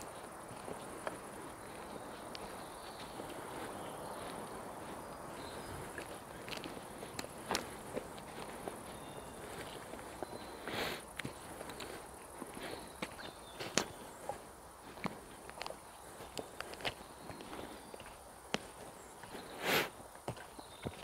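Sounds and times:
steady low hiss: 0:00.0 - 0:20.8
faint footsteps on forest path: 0:00.0 - 0:21.0.

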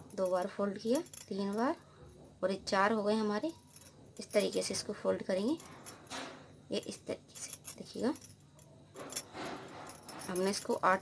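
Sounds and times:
bangles clinking: 0:00.0 - 0:02.2, 0:03.1 - 0:11.0.

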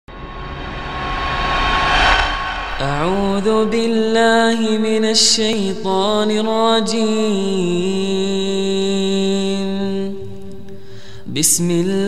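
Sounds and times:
rumbling whoosh: 0:00.0 - 0:04.8.

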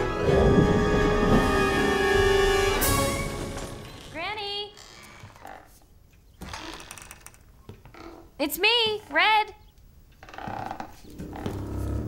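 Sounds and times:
orchestral chords: 0:00.0 - 0:03.8.

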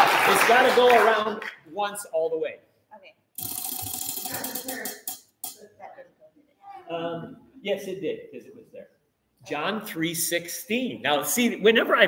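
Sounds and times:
prize wheel flapper clicking: 0:03.4 - 0:05.6.

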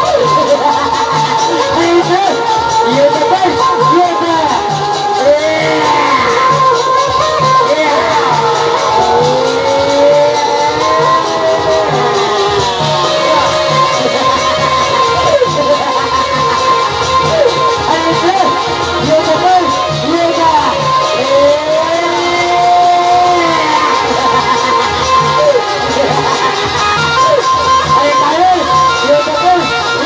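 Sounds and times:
sliding lead melody: 0:00.0 - 0:30.0
steady drum beat: 0:00.0 - 0:30.0.

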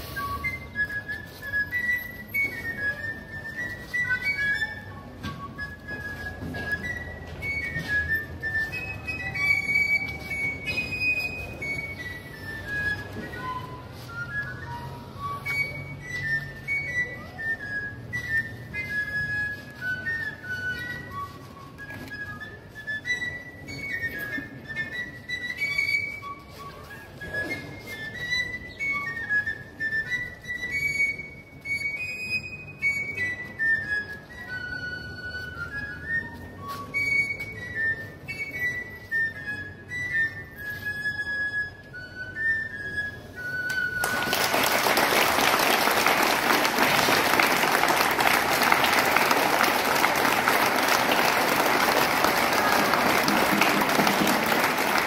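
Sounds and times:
pipe playing high melody: 0:00.0 - 0:55.0
crowd applauding: 0:44.0 - 0:55.0.

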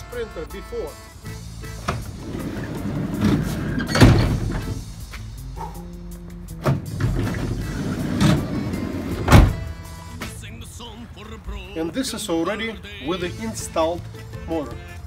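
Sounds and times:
background music: 0:00.0 - 0:15.0
door slamming shut: 0:01.8 - 0:04.8, 0:06.6 - 0:09.7
sliding van door rolling: 0:01.8 - 0:04.9, 0:06.6 - 0:09.7.

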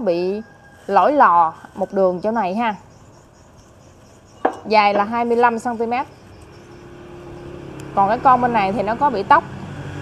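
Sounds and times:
vehicle engine hum: 0:05.0 - 0:10.0.

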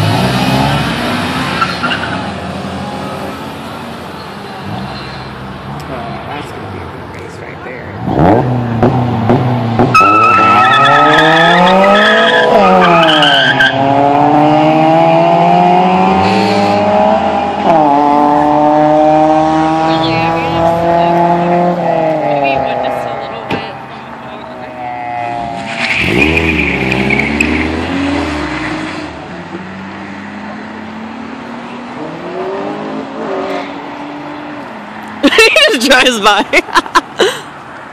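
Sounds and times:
car engines revving: 0:00.0 - 0:37.9
tire squeal: 0:01.5 - 0:02.4, 0:09.9 - 0:14.0, 0:24.8 - 0:29.1.

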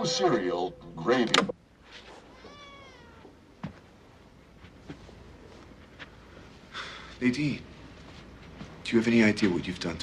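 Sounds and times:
faint meow-like squeal: 0:02.2 - 0:03.3.

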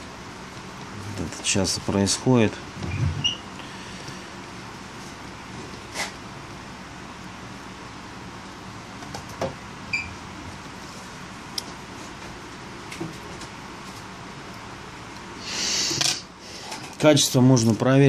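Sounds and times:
low room hum: 0:00.0 - 0:18.0.

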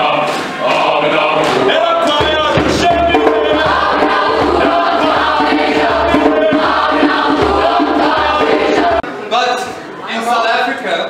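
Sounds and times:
youth choir singing folk song: 0:00.0 - 0:09.1
low thumps: 0:01.4 - 0:09.0.

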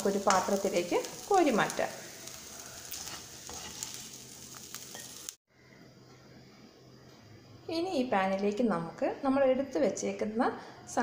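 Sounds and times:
vegetables sizzling in a pan: 0:00.0 - 0:05.4
spatula scraping a pan: 0:02.2 - 0:05.2.

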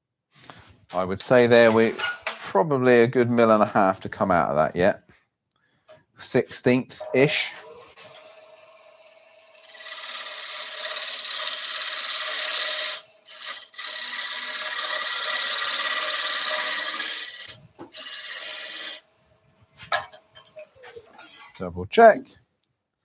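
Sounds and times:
chisel scraping wood on lathe: 0:06.9 - 0:19.0
lathe whine: 0:07.0 - 0:19.0.

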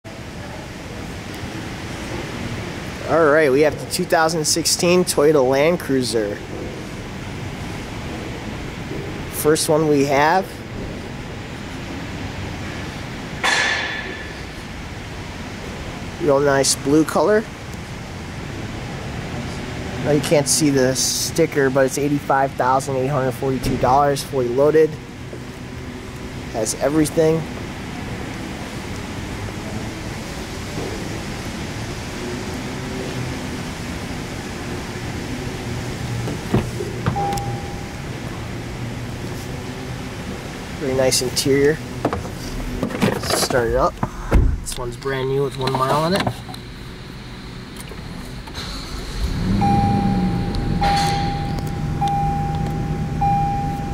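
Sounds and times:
indoor garage hum: 0:00.0 - 0:53.9
sharp metallic clank: 0:13.4 - 0:14.4, 0:50.6 - 0:51.8
room noise: 0:22.6 - 0:53.9
car door click: 0:36.2 - 0:37.8
short single beep: 0:37.2 - 0:38.0, 0:49.6 - 0:53.9.

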